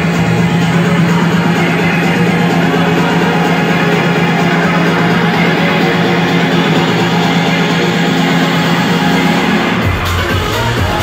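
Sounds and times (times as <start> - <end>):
deep bass: 0.0 - 11.0
electronic dance music: 0.0 - 11.0.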